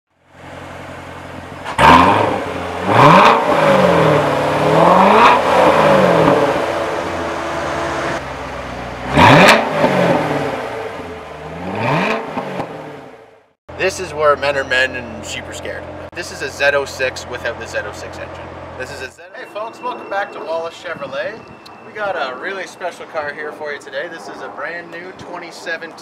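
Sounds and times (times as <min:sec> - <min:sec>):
car engine revving: 0:00.4 - 0:13.5.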